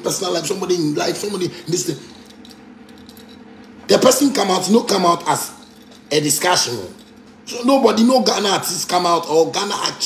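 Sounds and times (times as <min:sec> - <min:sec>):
man speaking: 0:00.0 - 0:02.2, 0:03.9 - 0:10.0
faint steady hum: 0:00.0 - 0:10.0.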